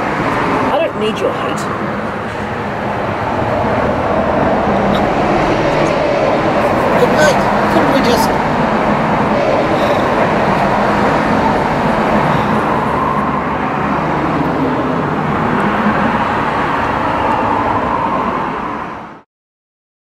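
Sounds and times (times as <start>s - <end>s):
steady vehicle noise: 0.0s - 19.2s.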